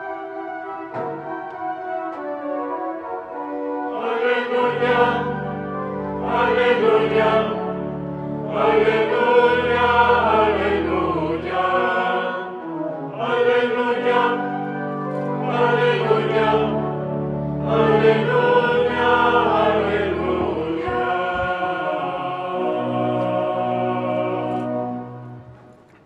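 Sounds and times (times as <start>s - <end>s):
choir singing a chant: 3.9s - 25.2s.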